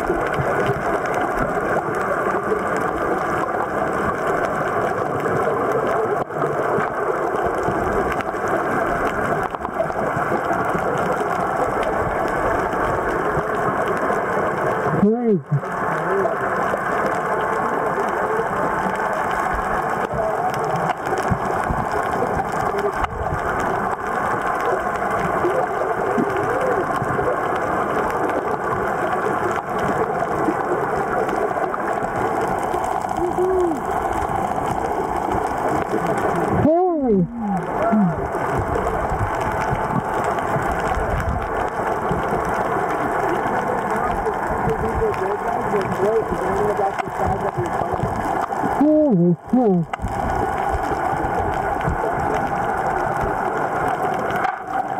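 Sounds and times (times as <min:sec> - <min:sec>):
underwater hum and hiss: 0:00.0 - 0:54.9
muffled vocal squeals through snorkel: 0:33.1 - 0:34.0, 0:36.6 - 0:38.4.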